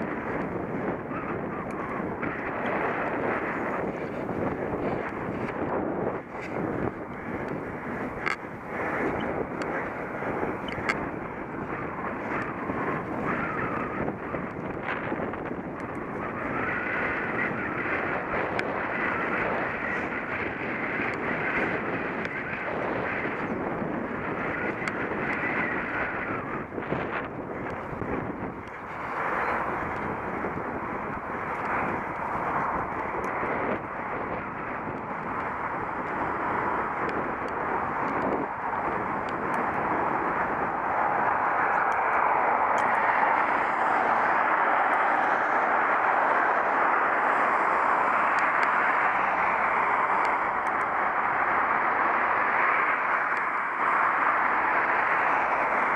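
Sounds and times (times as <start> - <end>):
bicycle tyres rolling on tarmac: 0.0 - 55.9
wind over microphone: 0.0 - 55.9.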